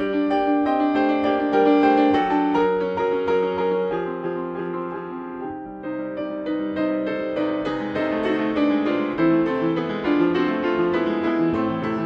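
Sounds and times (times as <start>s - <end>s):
piano played with both hands: 0.0s - 12.0s.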